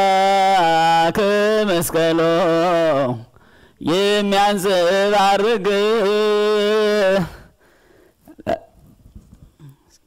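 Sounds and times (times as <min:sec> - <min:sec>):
faint mouth and breath noises: 0:08.1 - 0:10.0.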